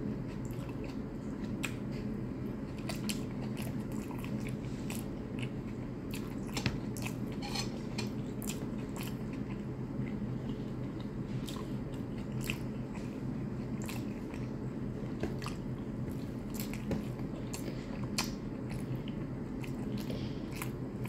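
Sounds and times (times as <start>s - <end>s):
steady low hum: 0.0s - 21.0s
person chewing food: 0.1s - 21.0s.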